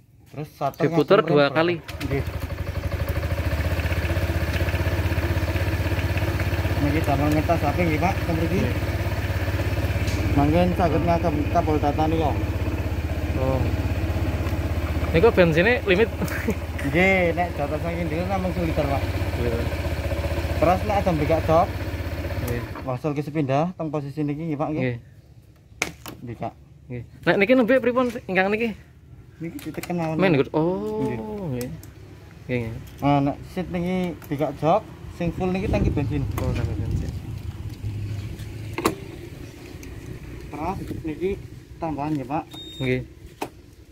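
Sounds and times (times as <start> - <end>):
scooter engine idling: 1.8 - 23.0, 33.0 - 43.9.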